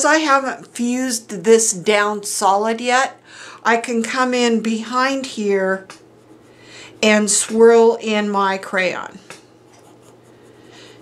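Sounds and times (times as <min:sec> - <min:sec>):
crayon scrubbing on fabric: 0:06.0 - 0:07.6, 0:09.7 - 0:11.0.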